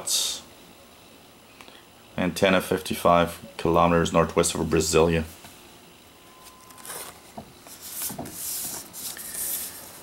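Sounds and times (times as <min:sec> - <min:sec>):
album page turning: 0:06.4 - 0:10.0
paper rustling and sliding: 0:06.4 - 0:10.0.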